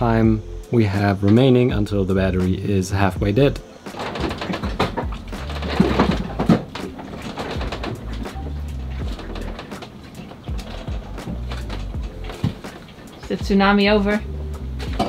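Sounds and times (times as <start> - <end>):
boat interior creaking: 0.0 - 15.0
loose gear knocking and clicking: 3.9 - 15.0.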